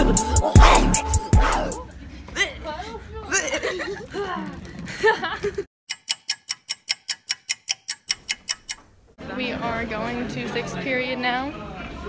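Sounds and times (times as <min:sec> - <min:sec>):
clock ticking rapidly: 0:05.9 - 0:08.8.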